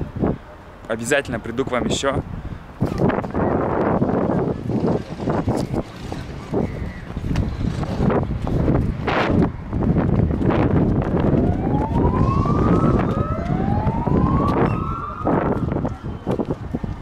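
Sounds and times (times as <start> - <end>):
wind rumble on microphone: 0.0 - 0.6, 1.3 - 17.0
emergency vehicle siren wailing: 11.2 - 16.8.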